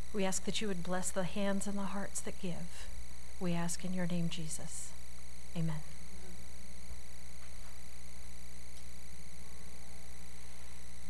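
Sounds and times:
electrical mains hum: 0.0 - 11.0
faint buzz and hiss: 0.0 - 11.0.

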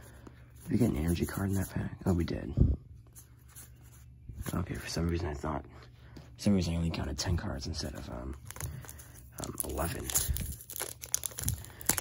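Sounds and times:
foil wrapper crinkling: 8.4 - 12.0.

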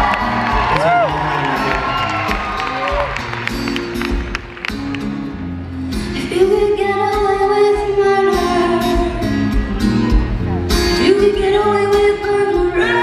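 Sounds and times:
audience whooping: 0.0 - 4.6
woman singing: 6.1 - 9.5, 10.9 - 13.0.

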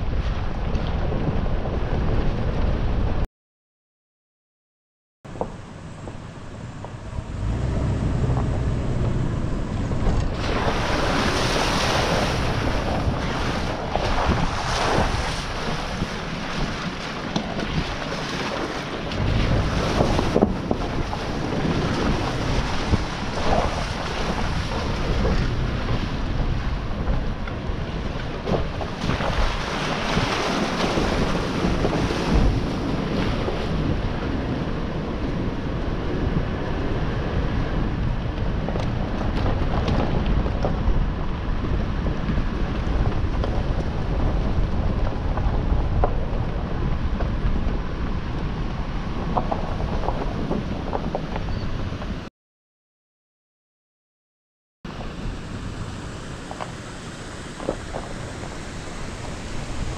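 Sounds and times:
wind buffeting microphone: 0.0 - 3.2, 5.3 - 52.3, 54.9 - 59.9
engine rumble and tyres on dirt: 0.0 - 3.3, 5.2 - 52.3, 54.9 - 59.9.

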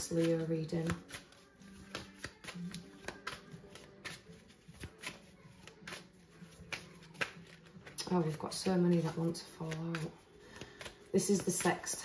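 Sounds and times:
cards being shuffled: 0.0 - 12.0.

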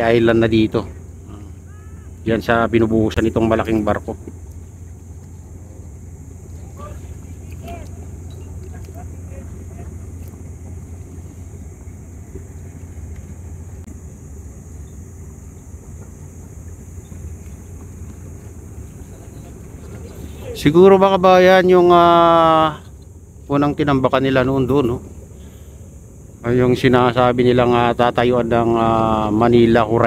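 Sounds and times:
distant faint voices: 0.0 - 30.0
low rumble over open water: 0.0 - 30.0.

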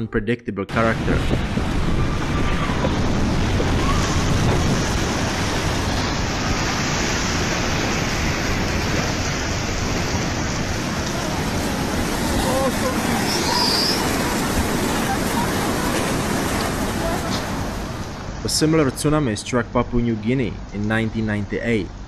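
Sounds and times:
rushing churning water: 0.9 - 19.2
faint shouting voices: 10.9 - 17.7.

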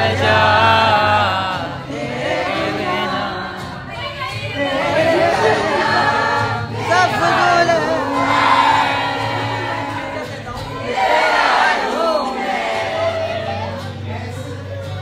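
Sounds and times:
group singing together: 0.0 - 15.0.

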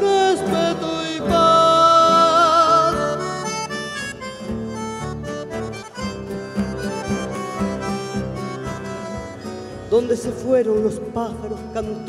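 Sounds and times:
person singing: 0.0 - 3.4
button accordion melody: 0.0 - 12.0
plucked bass notes: 0.0 - 12.0.

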